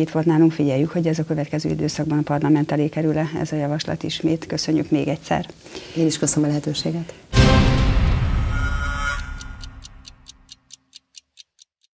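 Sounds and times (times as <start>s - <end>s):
theme music: 7.3s - 10.5s
clock ticking: 8.6s - 12.0s.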